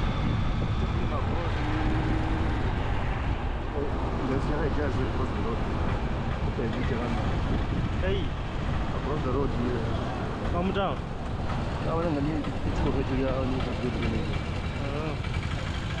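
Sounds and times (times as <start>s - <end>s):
road traffic rumble: 0.0s - 16.0s
people talking and calling out: 1.0s - 16.0s.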